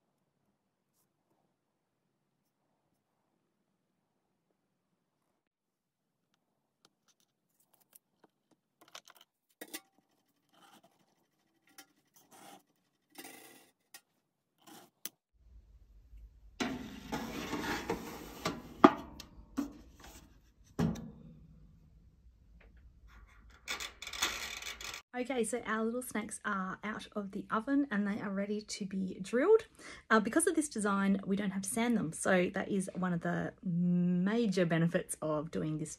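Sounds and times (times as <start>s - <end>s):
metal tray scraping and clanking: 16.6s - 20.2s.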